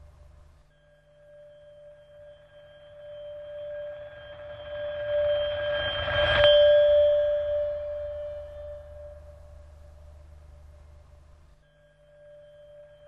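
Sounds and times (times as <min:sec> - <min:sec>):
steady ringing tone: 0:00.0 - 0:13.0.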